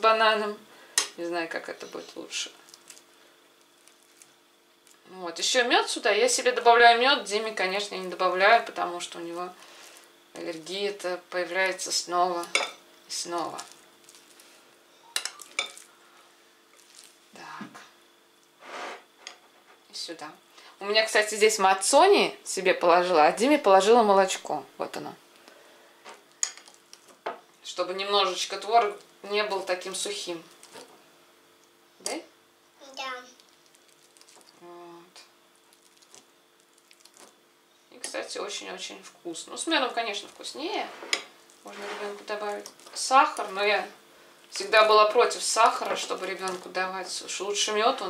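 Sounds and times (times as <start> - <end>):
cutlery clinking on ceramic plate: 12.5 - 12.8, 15.2 - 15.8.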